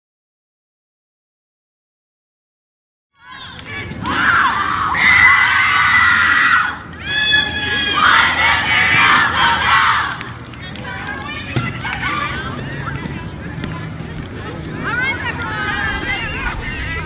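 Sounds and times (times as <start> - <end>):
girls shouting a cheer: 3.2 - 13.3, 14.5 - 17.0.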